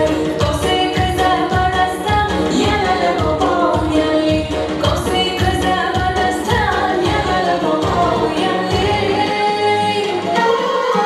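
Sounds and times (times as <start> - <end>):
woman singing pop song: 0.0 - 11.0.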